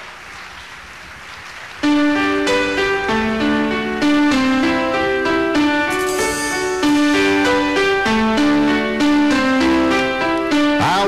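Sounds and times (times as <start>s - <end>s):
audience applause: 0.0s - 2.8s
keyboard sustained chords: 1.8s - 11.0s.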